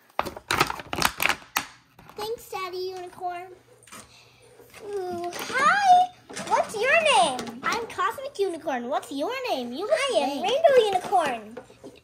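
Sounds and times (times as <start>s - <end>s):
plastic packaging crackling and clicking: 0.0s - 2.3s.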